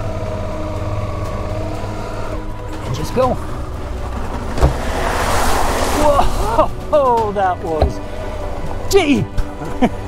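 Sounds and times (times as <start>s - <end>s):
muddy water splashing: 3.9s - 8.4s.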